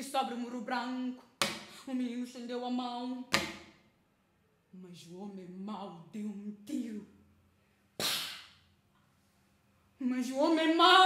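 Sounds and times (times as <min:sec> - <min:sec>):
mouth imitated gunshot: 0:08.0 - 0:08.5.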